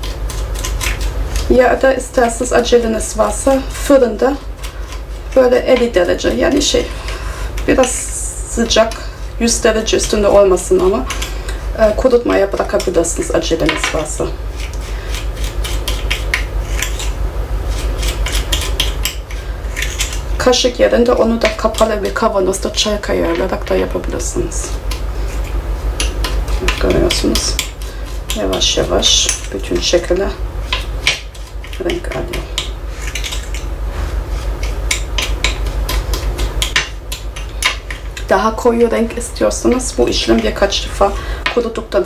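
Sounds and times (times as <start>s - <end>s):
spoon scraping sugar in glass bowl: 0.0s - 38.4s
steady low hum: 0.0s - 42.0s.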